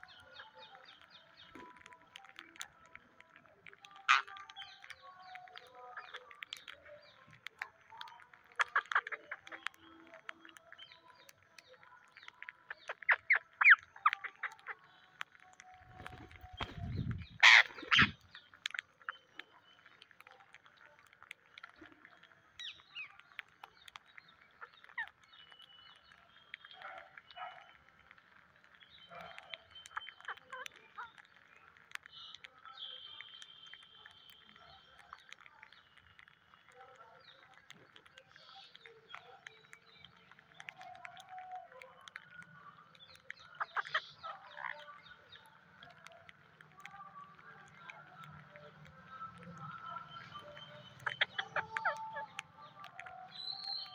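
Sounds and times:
birds pecking on concrete: 0.0 - 53.9
parakeet calls: 15.9 - 19.3, 46.9 - 53.9.

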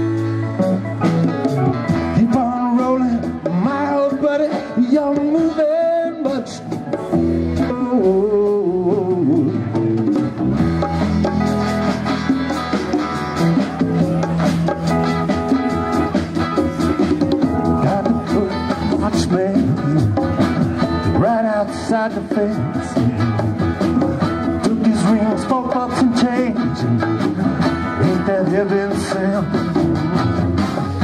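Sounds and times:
electric bass: 0.0 - 31.0
live rock band playing: 0.0 - 31.0.

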